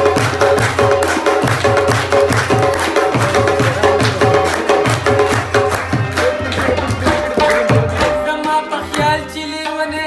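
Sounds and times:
hand percussion: 0.0 - 10.0
plucked rabab melody: 0.0 - 10.0.

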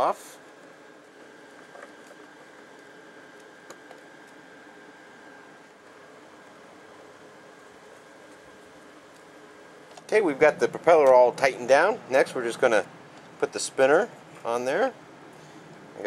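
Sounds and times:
room hum: 0.0 - 16.0.

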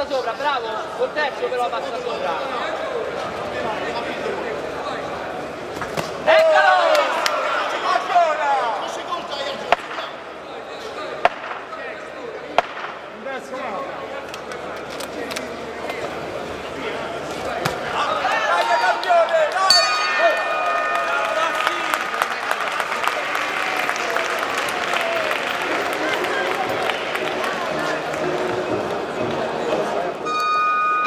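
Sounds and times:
crowd shouting and cheering: 6.1 - 9.7, 17.6 - 31.0
boxing ring bell: 19.7 - 22.1, 30.3 - 31.0.

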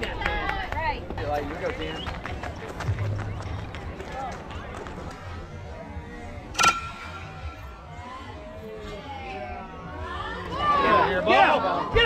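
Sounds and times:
metal bat hitting ball: 6.5 - 7.7.

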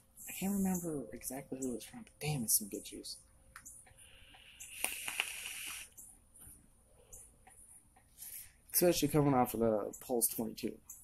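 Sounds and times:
breathy hiss of vapour: 4.0 - 6.0.

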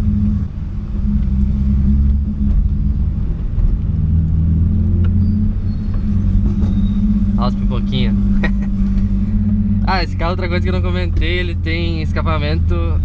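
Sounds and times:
car engine running from inside: 0.0 - 13.0.

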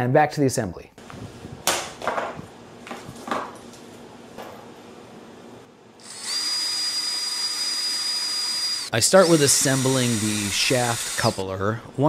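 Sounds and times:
cordless drill whining: 6.0 - 11.4.

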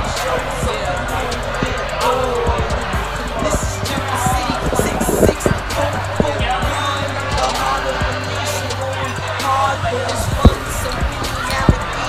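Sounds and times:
background music: 0.0 - 12.0
voices in a busy room: 0.0 - 12.0
sharp low thumps: 0.6 - 8.2, 10.1 - 11.8.

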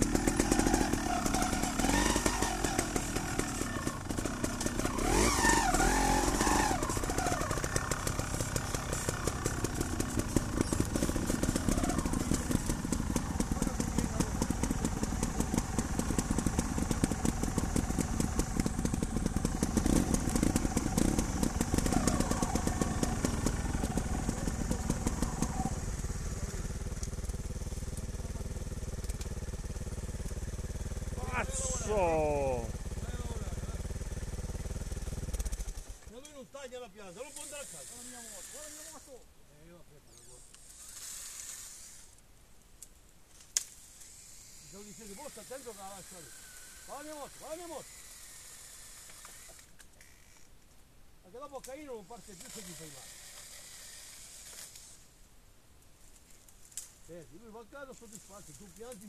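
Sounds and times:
motorcycle engine revving and idling: 0.0 - 36.2.

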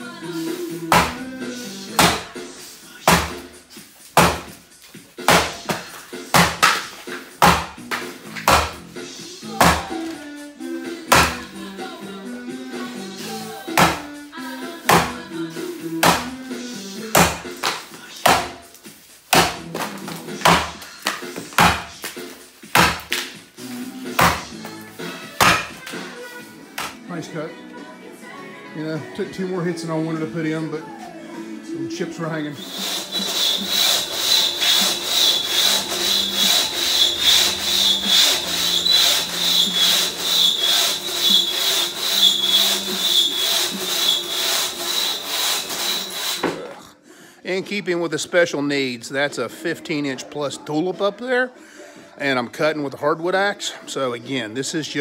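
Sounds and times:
background music: 0.0 - 55.0
axe chopping wood: 0.9 - 1.2, 2.0 - 2.3, 3.1 - 3.5, 4.2 - 4.6, 5.2 - 8.8, 9.6 - 9.9, 11.1 - 11.4, 13.8 - 14.1, 14.9 - 15.2, 16.0 - 16.4, 17.2 - 18.6, 19.3 - 22.1, 22.7 - 23.3, 24.2 - 24.6, 25.4 - 25.9.

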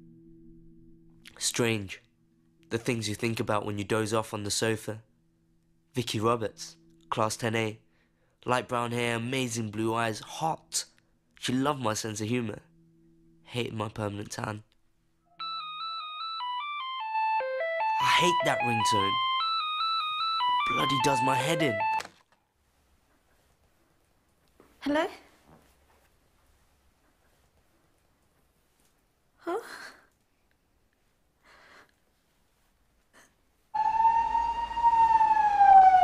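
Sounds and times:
emergency vehicle siren wailing: 15.4 - 22.0, 33.8 - 36.0
mobile phone ringtone: 15.4 - 22.1.

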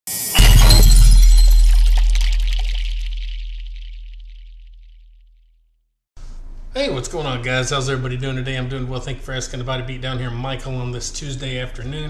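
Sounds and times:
glassy shattering shimmer: 0.1 - 4.6
deep boom: 0.3 - 5.0.

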